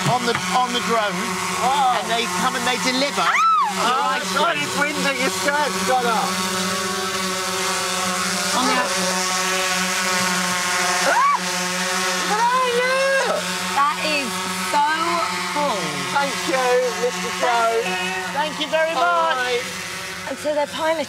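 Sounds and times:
drone propellers humming: 0.0s - 21.0s.

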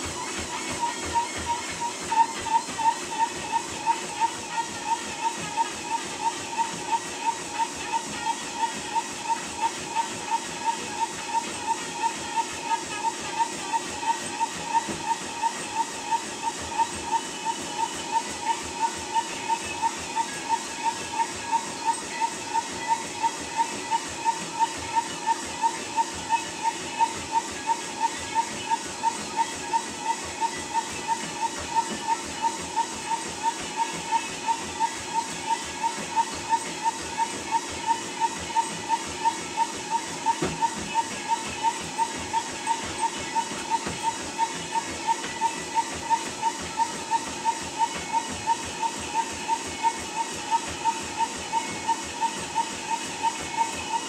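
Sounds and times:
treadmill motor whine: 0.0s - 54.0s.

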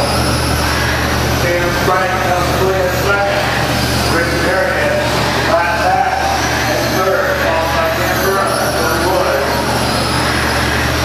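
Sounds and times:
electric motors whining: 0.0s - 11.0s
steady low hum: 0.0s - 11.0s.

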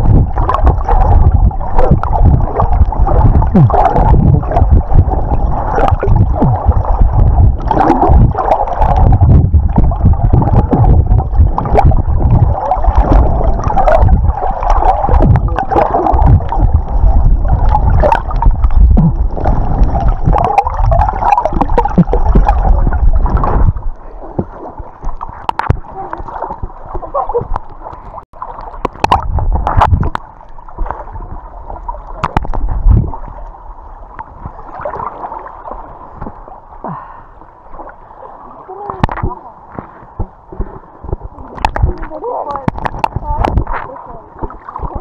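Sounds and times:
underwater rumbling and gurgling: 0.0s - 45.0s.

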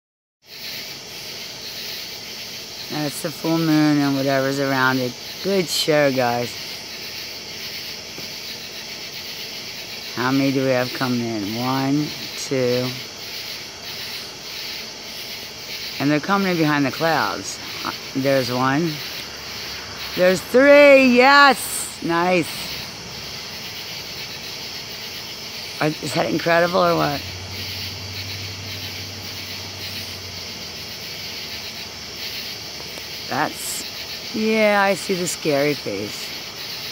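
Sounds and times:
steady background hiss: 0.5s - 36.9s.

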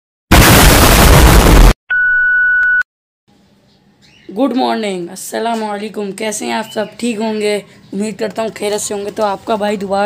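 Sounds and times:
loud burst of noise: 0.3s - 1.8s
steady high beep: 1.9s - 2.8s.

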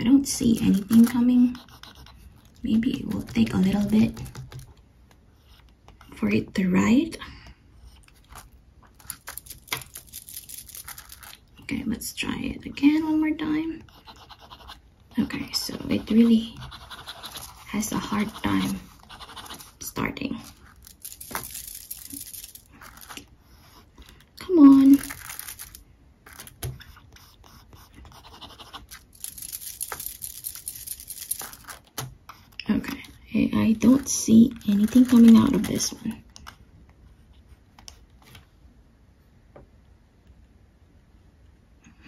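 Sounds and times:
fountain pen nib scratching paper: 0.2s - 6.2s, 7.9s - 11.4s, 12.9s - 24.0s, 24.6s - 36.0s.

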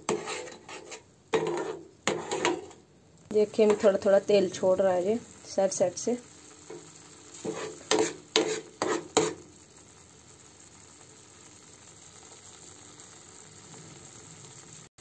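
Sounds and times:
spoon scraping steel pan: 0.0s - 2.8s, 3.5s - 4.0s, 7.4s - 9.4s
paste sizzling in a pan: 0.0s - 14.9s.

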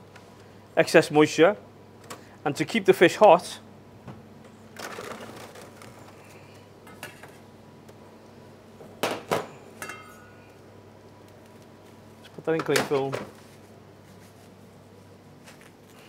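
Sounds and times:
cling film rustling: 4.8s - 6.4s.

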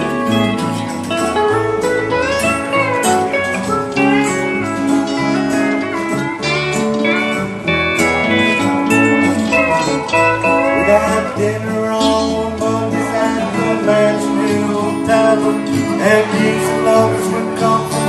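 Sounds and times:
country band instrumental: 0.0s - 18.0s
pedal steel guitar: 0.0s - 18.0s.

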